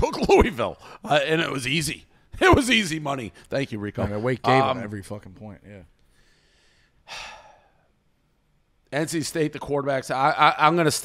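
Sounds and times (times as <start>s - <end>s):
man exhaling: 6.2s - 7.9s.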